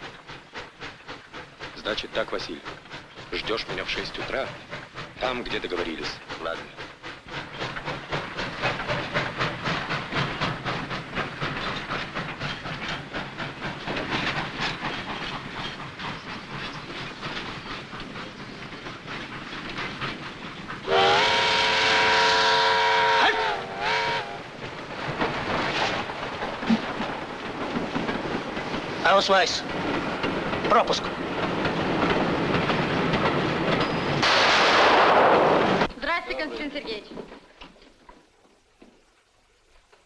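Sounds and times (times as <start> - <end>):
steam locomotive chuffing: 0.0 - 38.6
steam whistle blast: 20.9 - 24.4.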